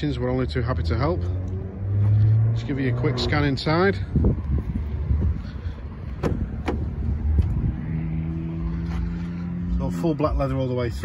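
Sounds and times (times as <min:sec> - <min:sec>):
low rumble on microphone: 0:01.2 - 0:09.9
car door latch clicks: 0:06.1 - 0:07.0.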